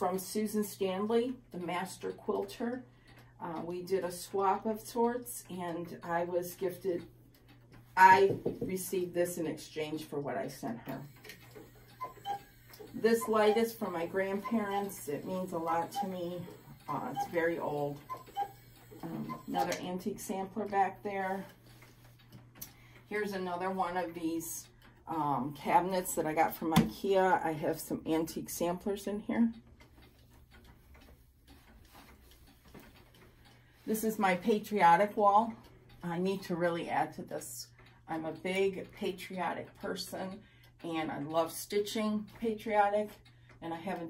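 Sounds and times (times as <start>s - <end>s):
low steady hum: 0.0s - 44.0s
wall clock ticking: 0.0s - 44.0s.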